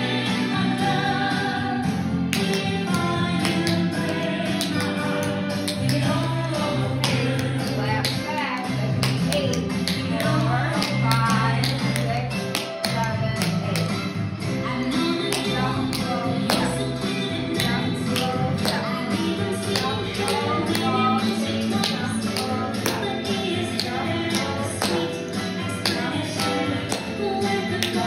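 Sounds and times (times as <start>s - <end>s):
pop song with singing: 0.0s - 28.0s.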